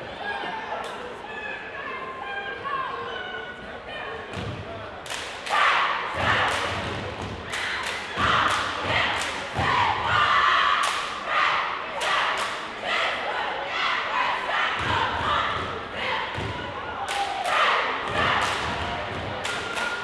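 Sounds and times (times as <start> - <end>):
girls shouting chant in unison: 5.5 - 6.8, 7.6 - 19.0
claps and stomps: 6.2 - 9.8, 17.1 - 20.0.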